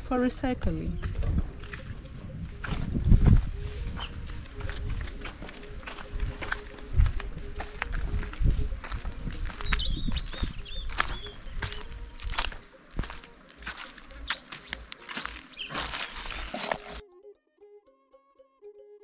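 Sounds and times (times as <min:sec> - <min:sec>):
footsteps crunching over litter: 0:02.6 - 0:17.0
high bird chirps: 0:09.5 - 0:12.2, 0:14.1 - 0:17.0.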